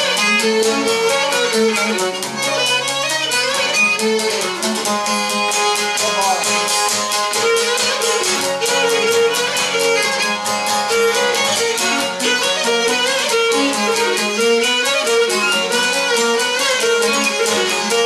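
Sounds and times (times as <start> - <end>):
bowed fiddle melody: 0.0 - 18.0
lute strummed with a pick: 0.0 - 18.0.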